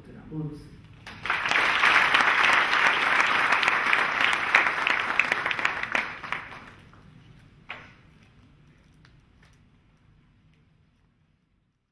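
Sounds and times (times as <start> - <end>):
audience applauding: 1.0 - 7.0.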